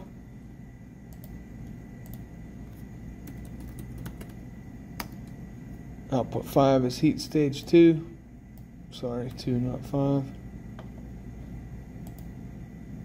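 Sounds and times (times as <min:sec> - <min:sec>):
steady low hum: 0:00.0 - 0:13.0
keyboard typing clicks: 0:01.1 - 0:01.4, 0:02.0 - 0:02.3, 0:03.2 - 0:04.4, 0:12.0 - 0:12.3.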